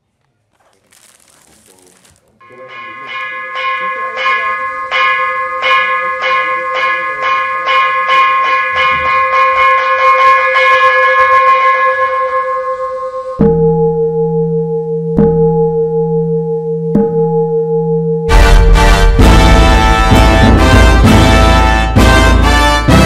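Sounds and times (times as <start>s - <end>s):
deep bowl-shaped bell ringing: 2.4s - 23.0s
metal ritual bell struck: 2.4s - 23.0s.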